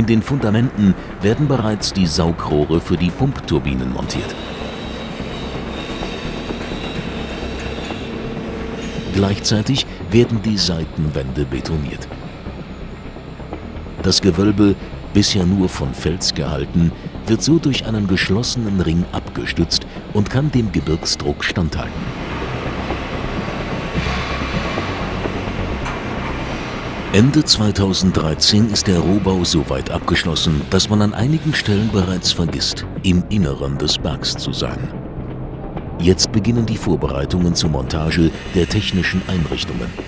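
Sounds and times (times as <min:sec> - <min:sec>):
machinery rumble: 0:00.0 - 0:40.0
faint high whine: 0:03.9 - 0:33.7.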